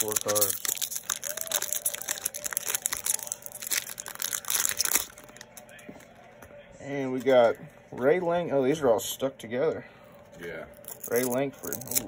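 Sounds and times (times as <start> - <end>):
foil wrapper crinkling: 0.0 - 5.7.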